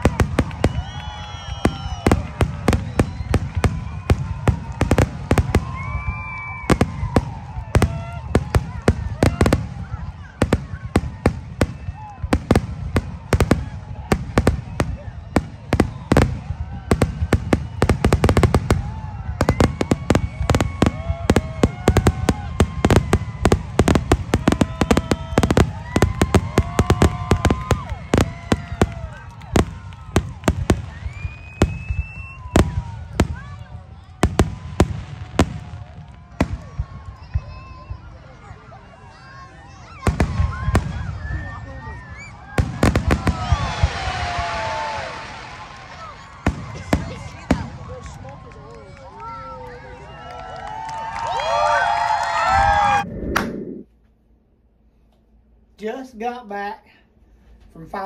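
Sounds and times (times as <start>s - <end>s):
fireworks launching and bursting: 0.0s - 38.0s, 40.0s - 48.4s, 52.5s - 53.9s.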